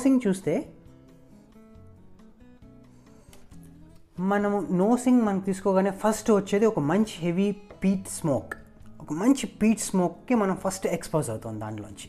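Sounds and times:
plucked guitar melody: 0.0 - 12.0.

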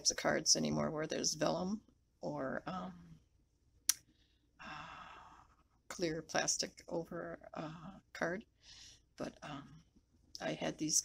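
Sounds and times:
woman's breathy sigh: 4.6 - 5.5.

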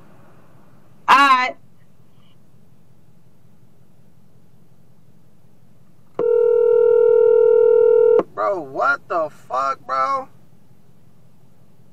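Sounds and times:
telephone ringback tone: 6.2 - 8.2.

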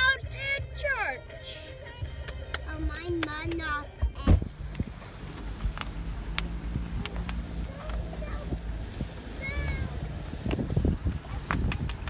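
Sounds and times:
vehicle low rumble: 0.6 - 12.0
plants popping against vehicle: 2.2 - 12.0.

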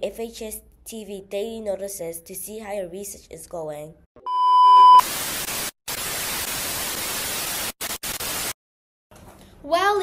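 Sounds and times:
electronic beep: 4.2 - 5.0.

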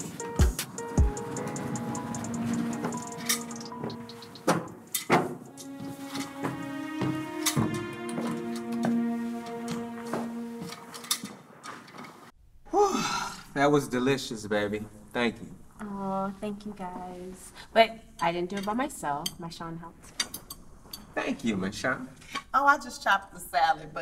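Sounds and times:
film score held tones: 0.0 - 11.6.

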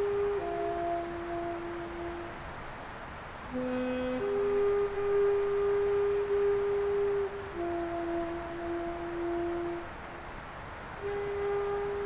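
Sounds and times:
slow melody of held notes: 0.0 - 2.5, 3.5 - 10.1, 11.0 - 12.0.

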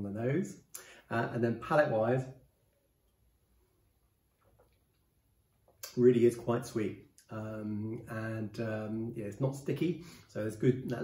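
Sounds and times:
man's voice: 0.0 - 2.4
faint soft clicks: 4.3 - 6.0.

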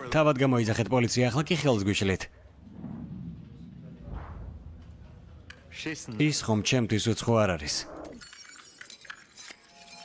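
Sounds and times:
glassy tinkling: 8.2 - 10.0.

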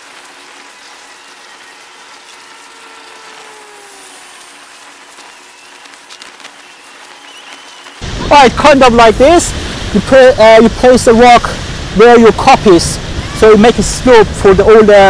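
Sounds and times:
plastic film rustling and crackling: 0.0 - 8.0
steady hiss: 0.0 - 15.0.

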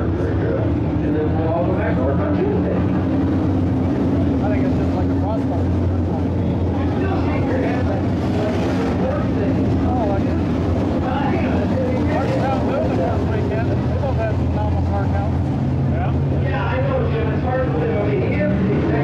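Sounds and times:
race car engines running: 0.0 - 19.0.

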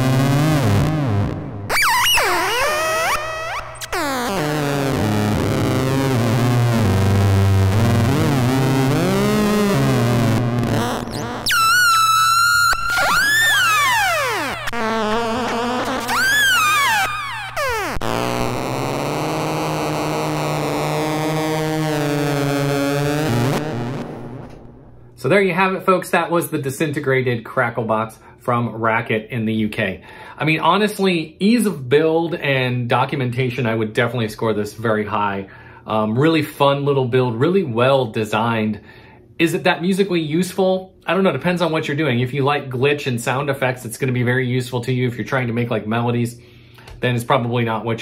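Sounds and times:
glitchy electronic noise synth tones: 0.0 - 24.5.

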